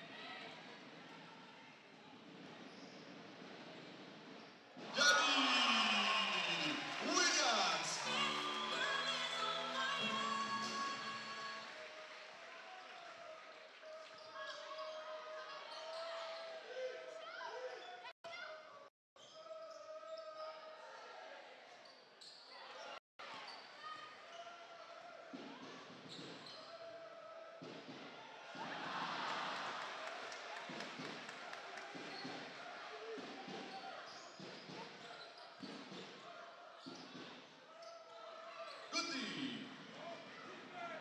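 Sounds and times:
crowd noise: 4.8s - 17.7s, 26.9s - 35.1s.

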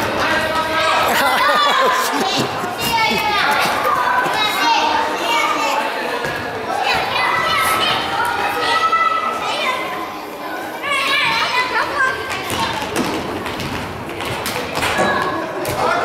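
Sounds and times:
children shouting in a gymnasium: 6.7s - 12.7s.

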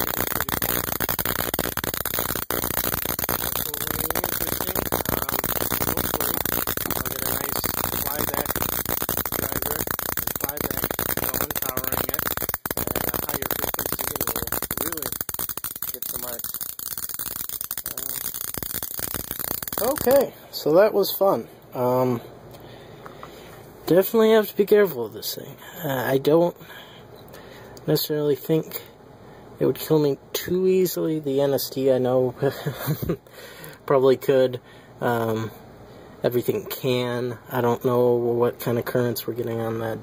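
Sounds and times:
electric arc buzzing and crackling: 0.0s - 20.3s.

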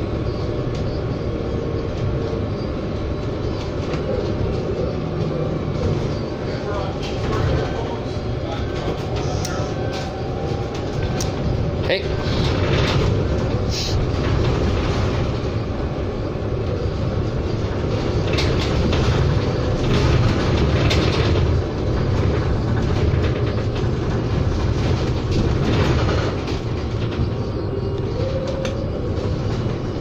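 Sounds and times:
road and tyre rumble: 0.0s - 30.0s.

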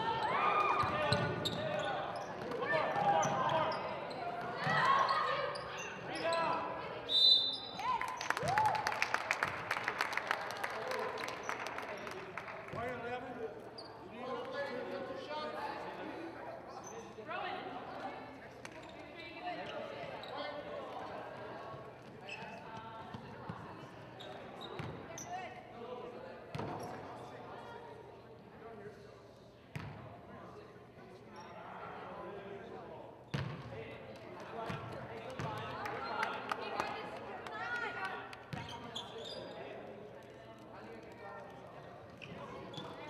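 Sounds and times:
murmur of voices: 0.0s - 43.0s.

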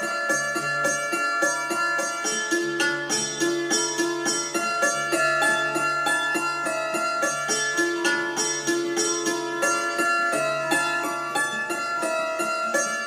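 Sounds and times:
keyboard dulcimer melody: 0.0s - 13.0s.

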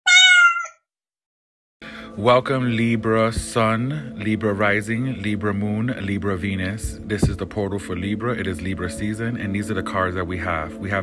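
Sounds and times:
cat meowing: 0.0s - 0.9s.

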